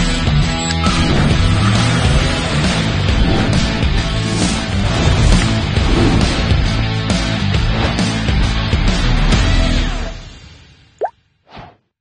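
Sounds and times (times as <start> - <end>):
rock music: 0.0 - 10.1.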